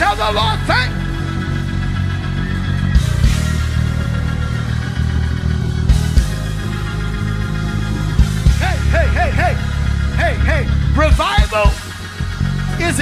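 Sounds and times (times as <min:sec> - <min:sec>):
gospel band music: 0:00.0 - 0:13.0.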